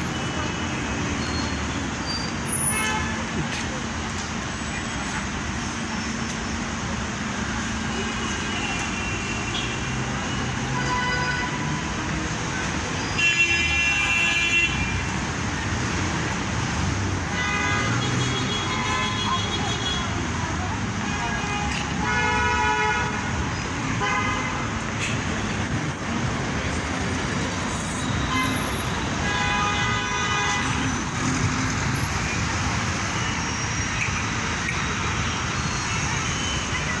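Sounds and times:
traffic engines and tyres: 0:00.0 - 0:37.0.

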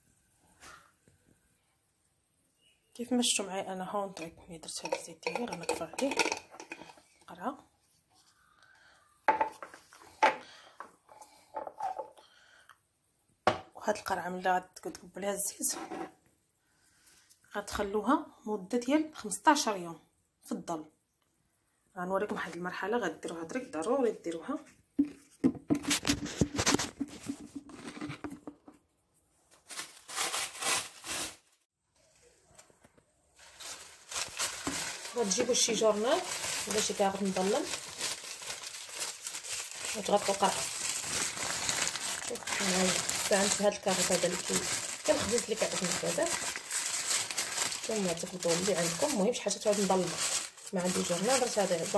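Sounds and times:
sharp knocks on countertop: 0:09.3 - 0:10.4, 0:13.5 - 0:13.7
plastic or paper crinkling: 0:25.8 - 0:28.5, 0:29.4 - 0:31.7, 0:33.4 - 0:51.9.

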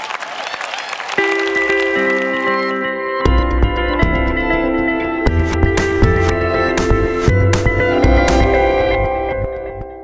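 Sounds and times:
audience applauding: 0:00.0 - 0:02.8
held music chords: 0:01.2 - 0:10.0.

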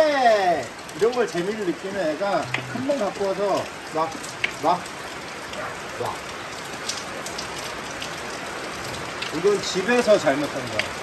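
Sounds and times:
raindrop ticks: 0:00.0 - 0:11.0
steady rain falling: 0:00.0 - 0:11.0.

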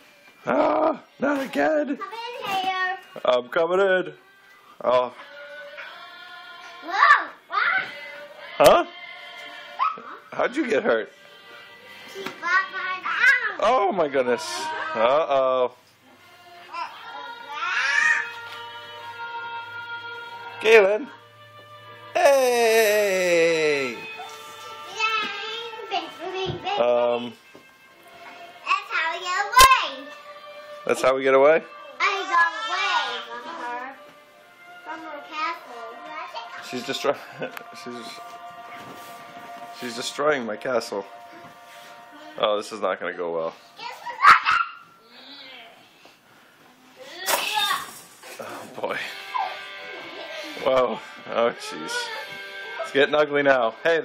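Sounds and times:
children squealing and yelling: 0:16.8 - 0:18.4, 0:43.8 - 0:44.9, 0:49.2 - 0:49.7
child wailing: 0:16.9 - 0:18.4, 0:22.2 - 0:24.3, 0:49.3 - 0:49.6, 0:51.9 - 0:52.4.

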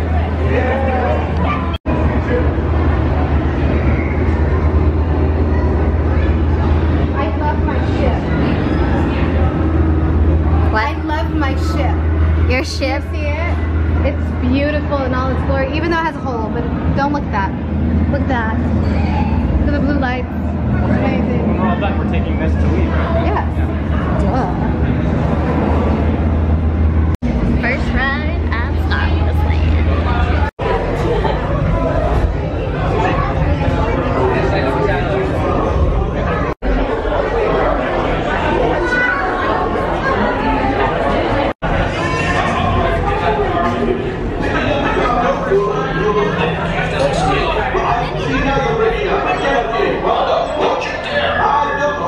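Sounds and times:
steady low rumble: 0:00.0 - 0:38.8
low hum: 0:00.0 - 0:50.8
crowd murmur: 0:00.0 - 0:52.0
people's voices: 0:00.0 - 0:52.0.

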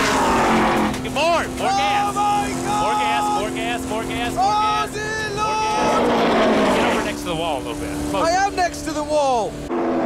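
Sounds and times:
race car engine droning: 0:00.0 - 0:10.0.

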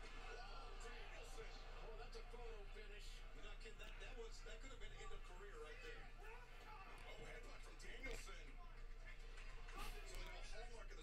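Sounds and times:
faint muffled speech: 0:00.0 - 0:11.0.

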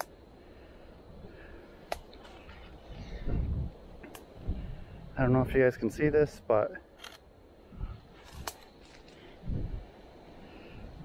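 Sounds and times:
camera handling noise: 0:07.0 - 0:07.2, 0:08.2 - 0:09.2.

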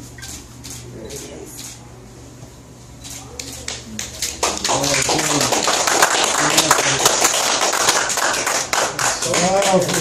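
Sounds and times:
small group applauding: 0:03.4 - 0:10.0.

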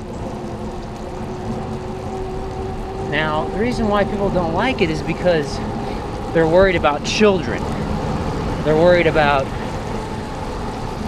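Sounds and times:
bicycle tyre hiss on wet road: 0:00.0 - 0:11.0
faint machine drone: 0:00.0 - 0:11.0
wind rumble on camera: 0:00.0 - 0:11.0.

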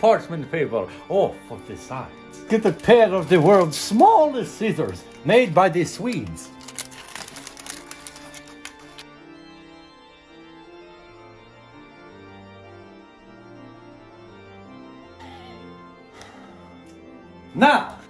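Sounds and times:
slow organ music: 0:00.0 - 0:18.0
scissors snipping paper: 0:04.7 - 0:09.1.

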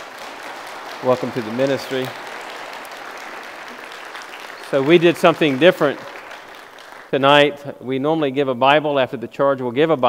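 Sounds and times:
crowd applauding: 0:00.0 - 0:07.5.

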